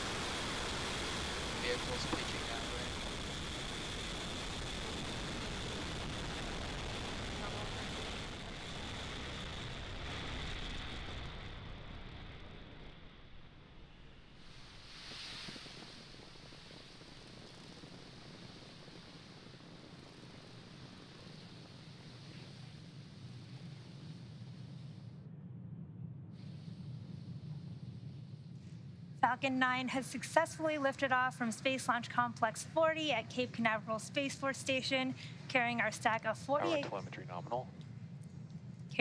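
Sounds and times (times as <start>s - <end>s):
soft hiss: 0.0s - 11.1s, 14.0s - 25.2s
rocket engine rumble: 0.0s - 39.0s.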